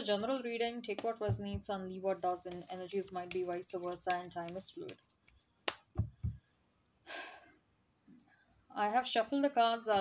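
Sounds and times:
card deck tapped on table: 5.7s - 6.4s.

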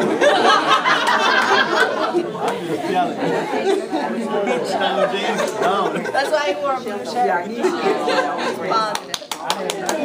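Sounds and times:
people talking over one another: 1.2s - 10.0s.

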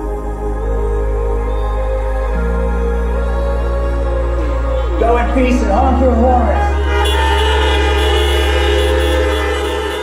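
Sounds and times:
held chord background music: 0.0s - 10.0s.

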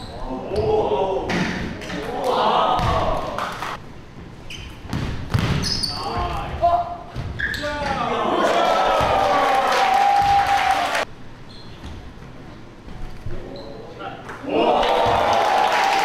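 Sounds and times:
basketball bouncing on hardwood floor: 4.9s - 5.7s
spectators cheering and shouting: 8.0s - 11.0s, 14.5s - 16.0s.

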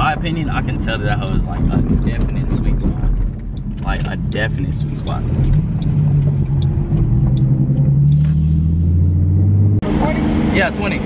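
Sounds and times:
car engine drone from inside cabin: 0.0s - 11.0s.

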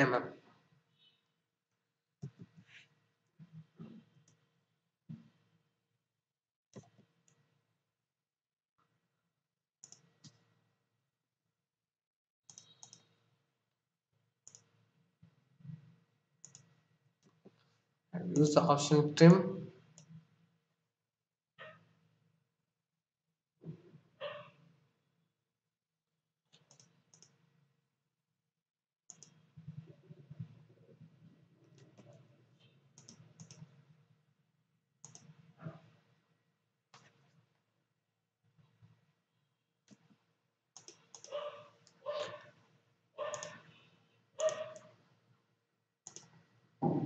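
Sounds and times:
computer mouse clicks: 6.7s - 7.4s, 9.8s - 10.5s, 12.5s - 13.2s, 14.4s - 14.8s, 16.4s - 17.4s, 26.5s - 27.4s, 29.1s - 29.4s, 33.0s - 33.8s, 35.0s - 35.8s, 39.9s - 40.2s, 40.8s - 42.5s, 43.2s - 43.8s, 44.4s - 45.0s, 46.0s - 46.4s.

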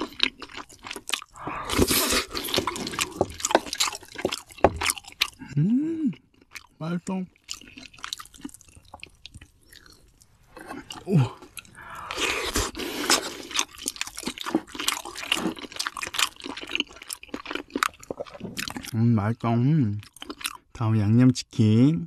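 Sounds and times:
person chewing crunchy food: 0.0s - 19.0s, 20.0s - 20.7s.

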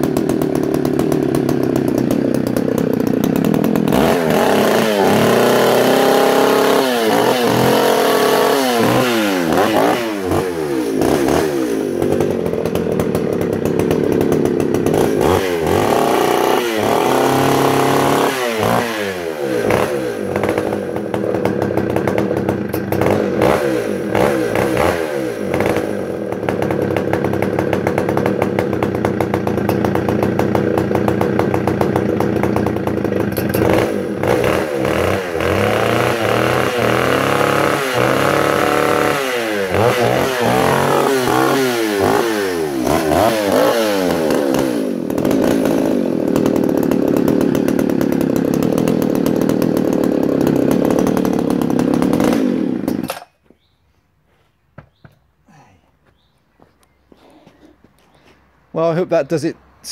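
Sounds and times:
chainsaw revving: 0.0s - 53.4s, 57.1s - 59.9s.

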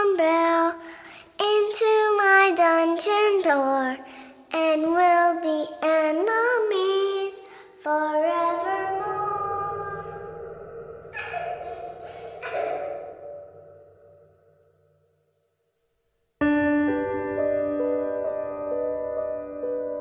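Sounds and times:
person singing slow song: 0.0s - 13.8s
breathy sounds: 9.0s - 14.2s.

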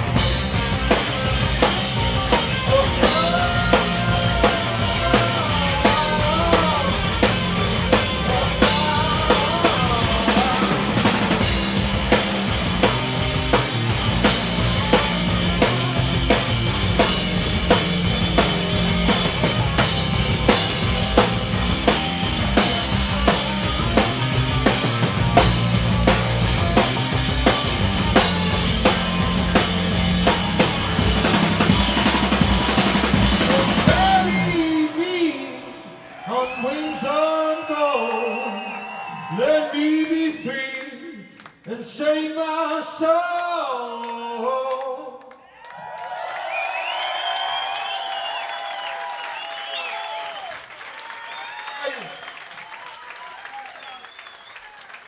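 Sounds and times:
drum kit steady beat: 0.0s - 34.5s
distorted electric guitars: 0.0s - 34.8s
bass guitar: 0.0s - 35.0s.

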